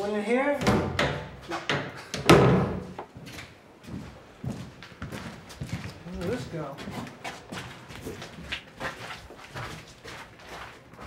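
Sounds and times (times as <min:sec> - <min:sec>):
footsteps on hard floor: 0:02.7 - 0:11.0.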